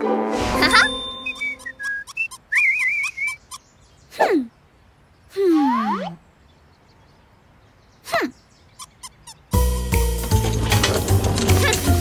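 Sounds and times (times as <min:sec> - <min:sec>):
warbling whistle tone: 0:00.6 - 0:03.4
whistle-like chirps: 0:00.6 - 0:03.6.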